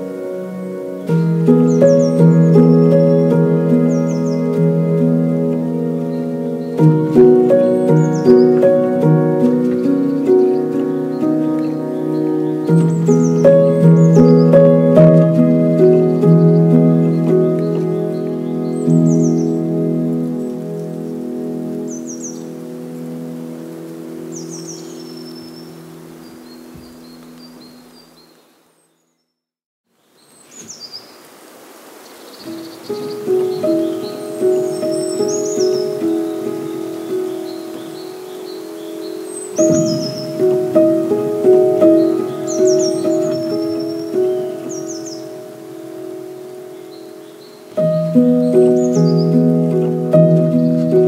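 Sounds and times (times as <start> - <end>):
calm background music: 0.0 - 28.2, 32.6 - 51.0
birdsong chirps: 0.0 - 51.0.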